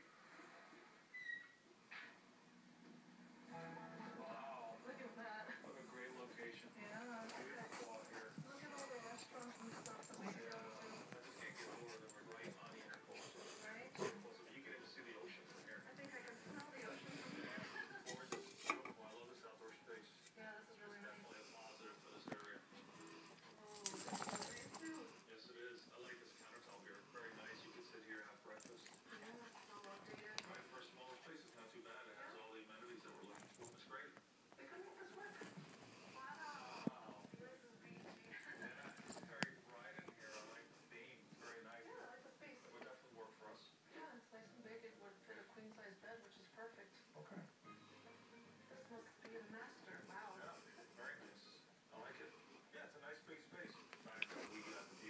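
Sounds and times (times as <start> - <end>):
quiet television voices: 0.0 - 55.0
dogs nuzzling: 5.6 - 43.5, 53.5 - 55.0.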